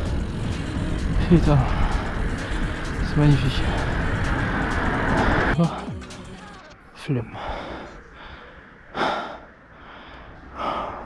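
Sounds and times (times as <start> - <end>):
bicycle tyre noise on road: 0.0 - 5.6
wind rushing over microphone: 0.0 - 5.6.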